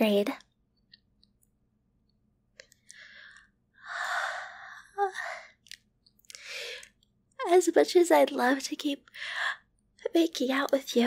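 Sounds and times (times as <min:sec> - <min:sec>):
small mouth clicks: 0:05.6 - 0:07.0.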